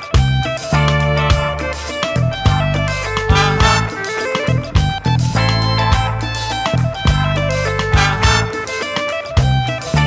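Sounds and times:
drum kit beat: 0:00.0 - 0:10.0
electric bass: 0:00.0 - 0:10.0
electric guitar: 0:00.0 - 0:10.0.

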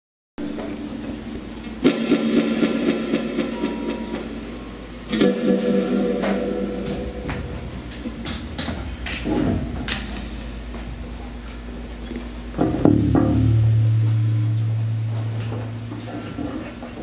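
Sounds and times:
big guitar chords struck: 0:00.4 - 0:17.0
droning electric guitars and bass: 0:00.4 - 0:17.0.

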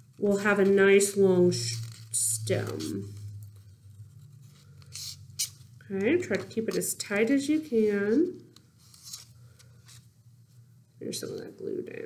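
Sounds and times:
paper rustling: 0:00.0 - 0:05.7, 0:06.3 - 0:10.1
low steady hum: 0:00.0 - 0:12.0.

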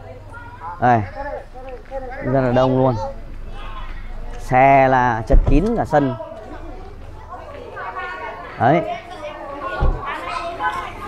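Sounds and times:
outdoor murmur: 0:00.0 - 0:11.0
people chattering: 0:00.0 - 0:11.0.

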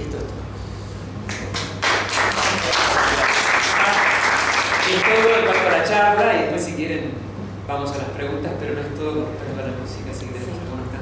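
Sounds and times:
audience applauding: 0:01.3 - 0:05.9.

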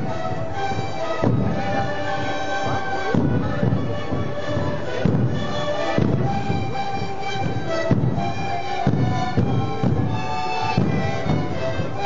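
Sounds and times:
panpipes playing held chords: 0:00.0 - 0:12.0.

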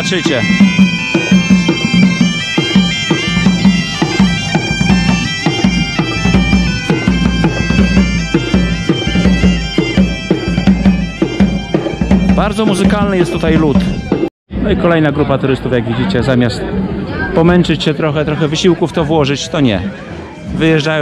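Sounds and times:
bagpipes playing lively tune: 0:00.0 - 0:14.3
drum beat: 0:00.0 - 0:14.3.

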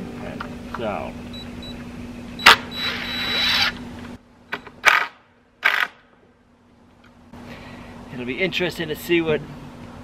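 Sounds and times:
cordless drill whirring: 0:02.7 - 0:03.8.

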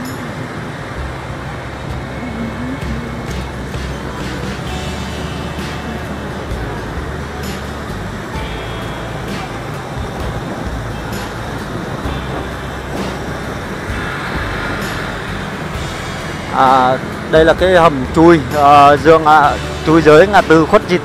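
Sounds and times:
wind rush: 0:00.0 - 0:19.6
motorbike engine rumble: 0:00.0 - 0:21.0
surrounding traffic: 0:00.0 - 0:21.0
man speaking: 0:16.5 - 0:21.0.

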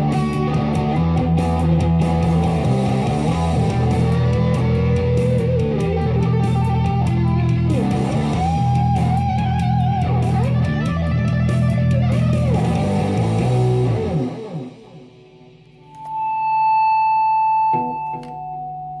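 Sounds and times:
distorted electric guitar: 0:00.0 - 0:19.0
heavy metal backing: 0:00.7 - 0:15.6.

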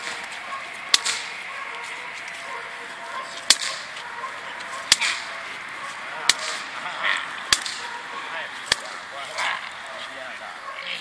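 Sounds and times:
whip cracking: 0:00.9 - 0:01.3, 0:03.4 - 0:03.9, 0:04.9 - 0:05.3, 0:06.3 - 0:06.7, 0:07.5 - 0:07.9, 0:08.6 - 0:09.0.

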